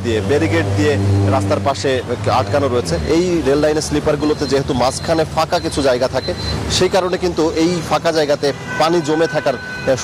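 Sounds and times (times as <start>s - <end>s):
reporter speaking: 0.0s - 10.0s
road traffic noise: 0.0s - 10.0s.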